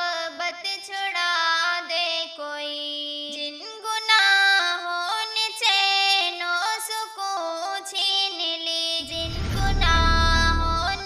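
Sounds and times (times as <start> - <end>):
deep rumbling swell: 9.0 - 11.0.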